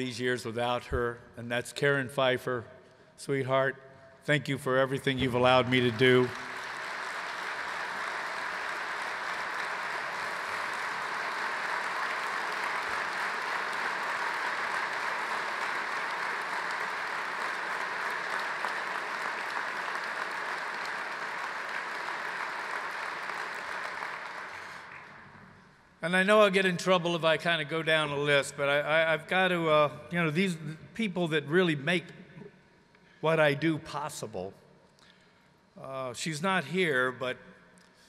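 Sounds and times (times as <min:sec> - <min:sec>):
large crowd applauding: 0:05.1 - 0:25.4.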